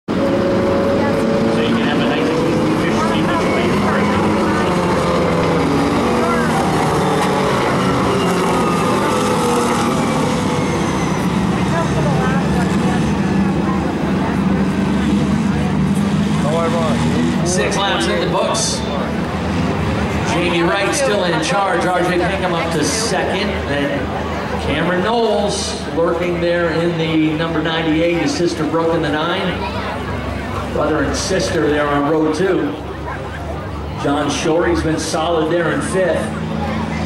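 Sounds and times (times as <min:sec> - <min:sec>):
race car engines passing: 0:00.1 - 0:37.0.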